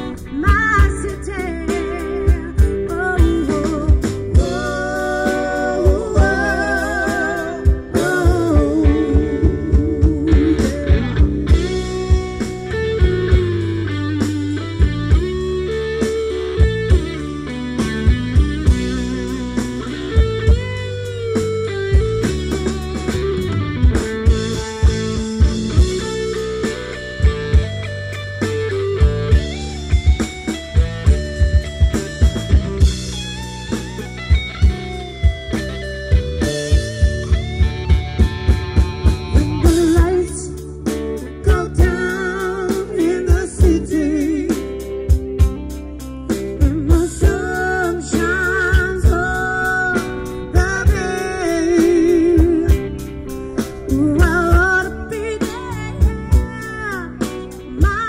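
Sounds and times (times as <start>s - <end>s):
electric guitar: 0.0s - 58.0s
live band playing: 0.0s - 58.0s.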